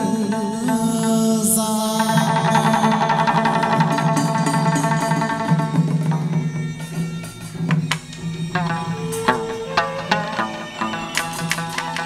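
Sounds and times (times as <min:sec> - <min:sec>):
ornamented wavering melody: 0:00.0 - 0:12.0
steady tapping beat: 0:00.0 - 0:12.0
sustained pitched accompaniment: 0:00.0 - 0:12.0.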